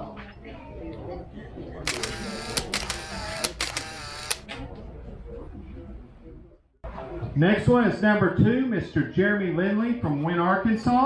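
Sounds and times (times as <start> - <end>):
crowd voices: 0.0 - 11.0
camera shutter clicks: 1.9 - 4.5.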